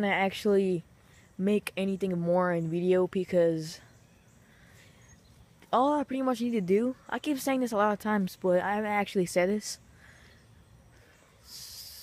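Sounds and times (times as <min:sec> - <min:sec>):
soft hiss of breath: 0:09.8 - 0:12.0.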